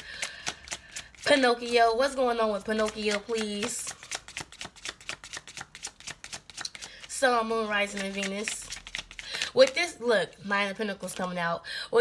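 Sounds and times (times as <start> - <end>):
cards being shuffled: 0.0 - 9.9.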